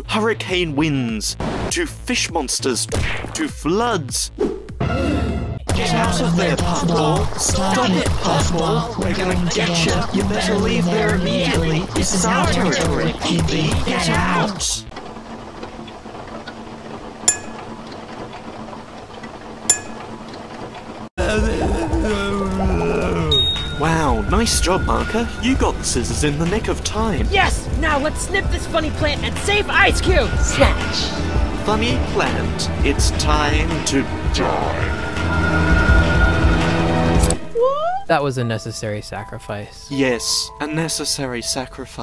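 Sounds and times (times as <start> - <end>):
tense cartoon music: 0.0 - 20.2, 21.2 - 42.0
sharp ringing clinks: 17.3 - 17.7, 19.7 - 20.1.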